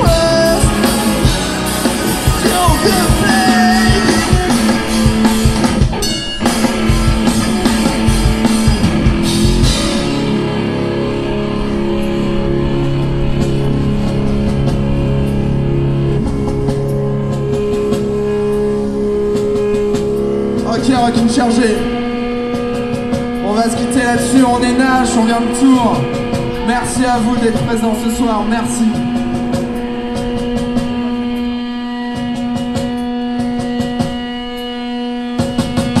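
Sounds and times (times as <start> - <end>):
drum kit: 0.0 - 36.0
electric guitar: 0.0 - 36.0.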